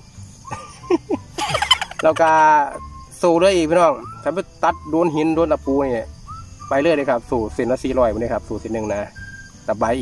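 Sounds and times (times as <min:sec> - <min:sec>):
man laughing: 0:00.5 - 0:02.8.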